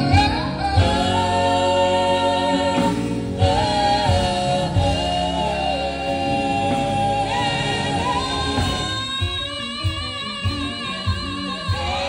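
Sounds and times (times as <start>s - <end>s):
band with keyboard drums and guitar: 0.0s - 12.0s
women singing gospel harmonies: 0.0s - 12.0s.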